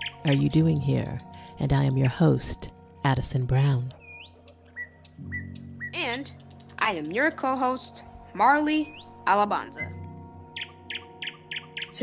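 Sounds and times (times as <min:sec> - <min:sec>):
bird chirping: 0:00.0 - 0:12.0
soft background music: 0:00.0 - 0:12.0.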